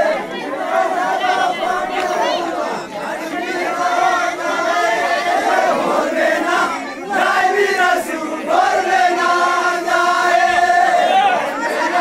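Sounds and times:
men singing and chanting in unison: 0.0 - 12.0.

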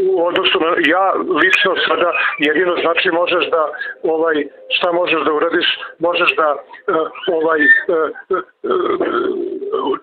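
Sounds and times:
man speaking: 0.1 - 9.0
man's long hesitation sound: 1.2 - 10.0.

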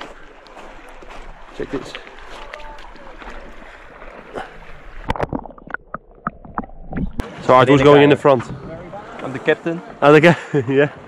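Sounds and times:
river water rippling over gravel: 0.0 - 7.4.

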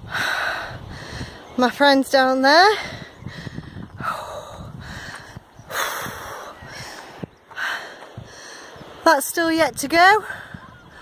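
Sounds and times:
woman breathing hard: 0.0 - 1.5, 2.8 - 8.8.

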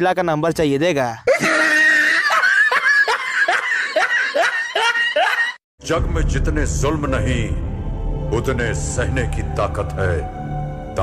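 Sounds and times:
person laughing: 1.3 - 5.6.

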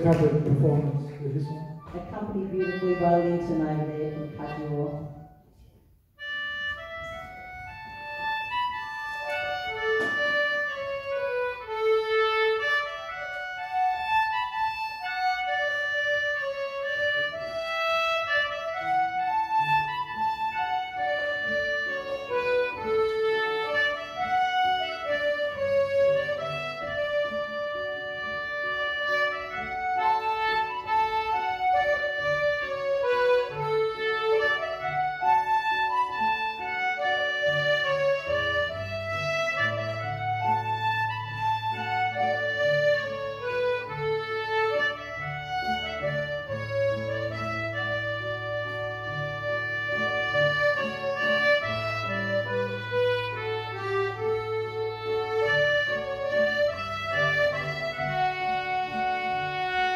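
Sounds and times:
concertinas playing a waltz: 0.0 - 59.9
low held accompanying notes: 0.0 - 59.9.

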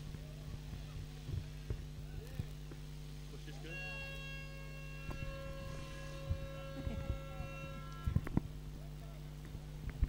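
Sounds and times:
low constant hum: 0.0 - 10.0
steady multi-pitch tone: 3.2 - 9.3.

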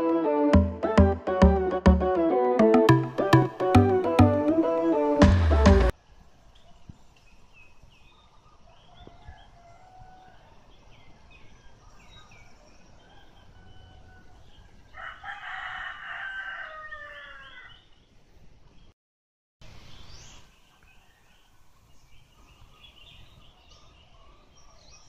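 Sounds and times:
rooster crowing: 9.0 - 10.6, 13.0 - 17.8
small birds chirping: 19.7 - 25.0.

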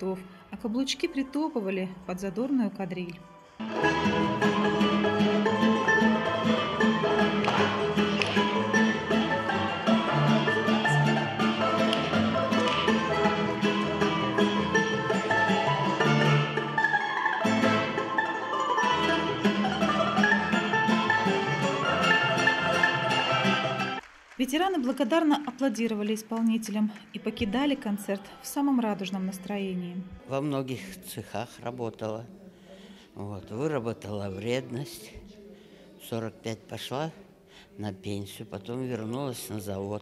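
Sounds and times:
instrumental folk dance music: 3.6 - 24.6.

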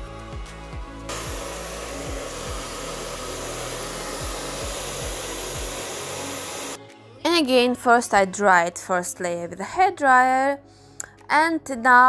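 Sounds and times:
soft background music: 0.0 - 12.0
hair dryer blowing: 1.1 - 6.8.

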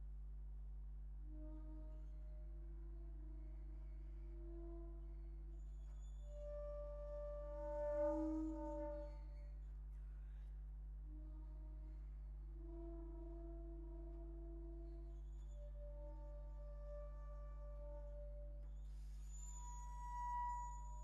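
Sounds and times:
bass flute low notes: 1.2 - 9.7, 11.0 - 21.0.

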